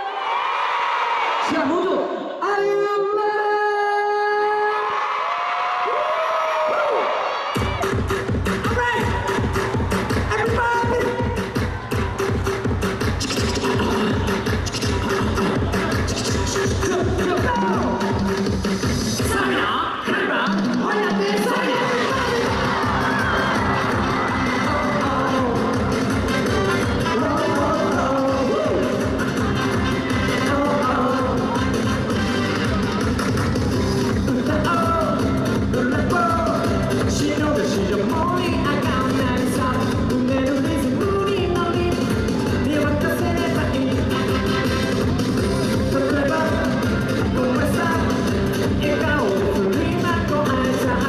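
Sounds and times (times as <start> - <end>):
audience cheering: 0.0 - 1.8, 4.7 - 8.0, 9.0 - 16.7, 20.9 - 28.9
crowd noise: 0.0 - 51.0
live pop music: 7.5 - 51.0
steady bass drum beat: 7.6 - 19.6, 22.0 - 51.0
heavy drum beat: 22.0 - 32.1
person singing into microphone: 34.2 - 44.1, 45.8 - 51.0.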